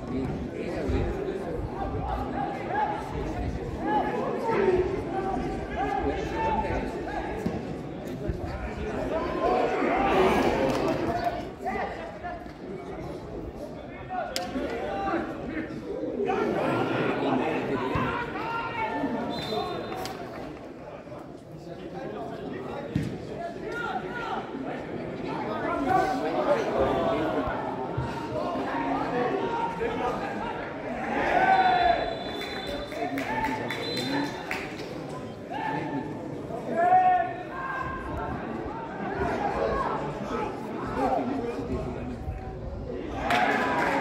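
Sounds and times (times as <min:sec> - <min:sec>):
indistinct talk of spectators: 0:00.0 - 0:44.0
voices calling out and chattering: 0:00.0 - 0:44.0.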